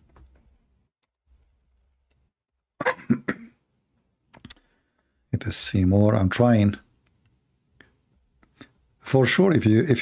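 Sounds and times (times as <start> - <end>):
man coughing: 2.8 - 3.6.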